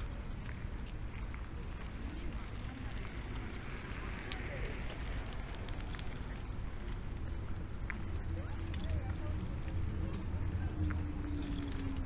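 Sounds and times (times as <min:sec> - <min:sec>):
chatter of passers-by: 0:00.0 - 0:12.0
steady low rumble: 0:00.0 - 0:12.0.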